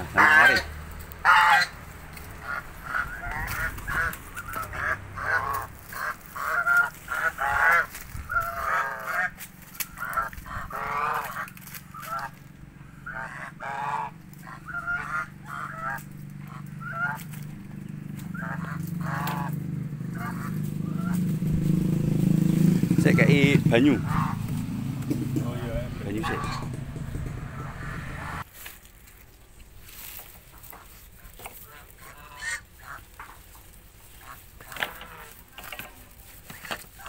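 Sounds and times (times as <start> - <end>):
geese honking: 0.0 - 21.3, 23.1 - 24.6, 25.3 - 28.5, 29.9 - 37.0.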